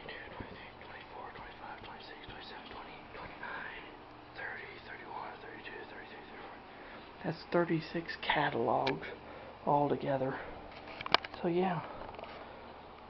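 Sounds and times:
man whispering: 0:00.0 - 0:09.2.

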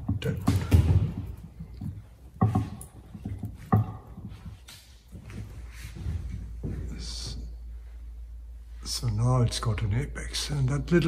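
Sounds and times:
room hum: 0:00.0 - 0:11.0.

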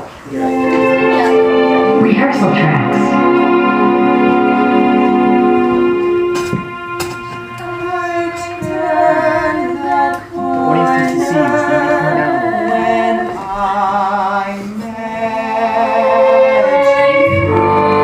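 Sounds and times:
keyboard chords: 0:00.3 - 0:13.4, 0:15.5 - 0:18.0
person singing with vibrato: 0:00.3 - 0:18.0.

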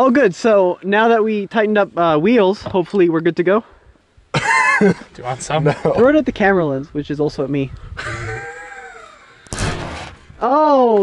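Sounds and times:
drawn-out vocal sound: 0:08.0 - 0:09.4.

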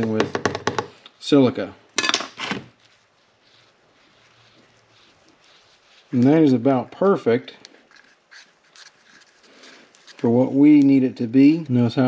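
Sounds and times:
straw stirring resin in plastic cup: 0:02.7 - 0:12.0.

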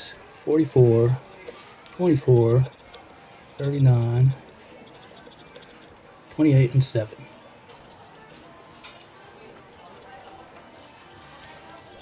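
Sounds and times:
spoon scratching lottery ticket: 0:00.0 - 0:06.9, 0:07.6 - 0:12.0.

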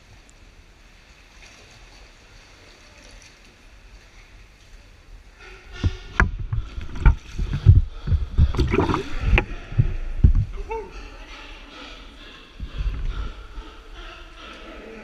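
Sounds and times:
water lapping softly: 0:00.0 - 0:15.0.

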